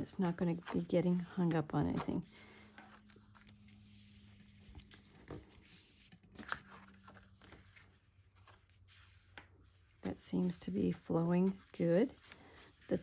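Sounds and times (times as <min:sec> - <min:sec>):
low steady hum: 0:00.0 - 0:13.0
cardstock rustling and sliding: 0:01.8 - 0:10.2.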